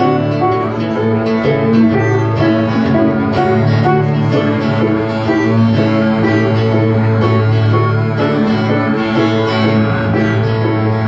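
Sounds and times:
acoustic guitar picking: 0.0 - 11.0
banjo picking: 0.0 - 11.0
upright bass: 0.0 - 11.0.

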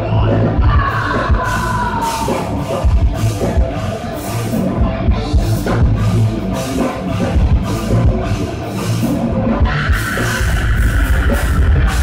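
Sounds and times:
harsh shouted vocals: 0.0 - 2.8
distorted electric guitars: 0.0 - 12.0
pounding drum kit: 0.0 - 12.0.

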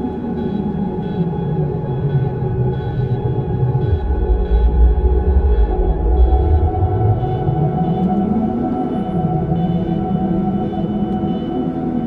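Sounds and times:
ambient meditation drone music: 0.0 - 12.0.

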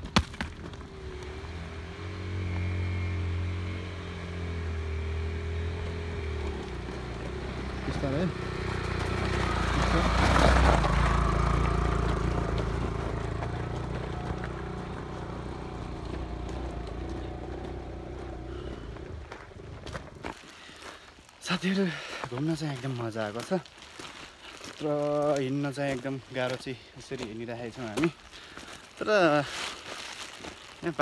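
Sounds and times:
motorcycle engine passing: 0.7 - 20.3.

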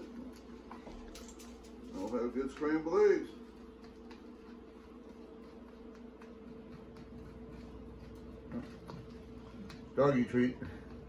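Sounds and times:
fork stirring eggs in paper bowl: 0.0 - 11.0
steady low hum: 0.0 - 11.0.

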